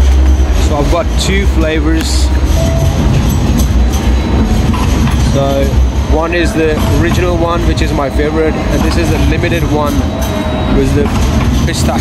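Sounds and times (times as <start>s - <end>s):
city street low rumble: 0.0s - 12.0s.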